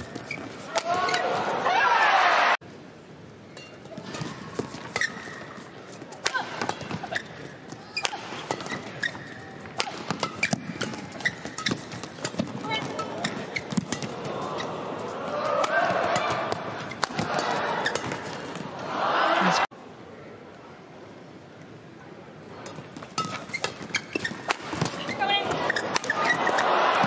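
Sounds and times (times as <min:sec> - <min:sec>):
crowd voices: 0:03.8 - 0:20.4, 0:24.5 - 0:27.0
racket striking shuttlecock: 0:06.2 - 0:07.3, 0:08.0 - 0:14.2, 0:15.6 - 0:18.6, 0:22.7 - 0:27.0.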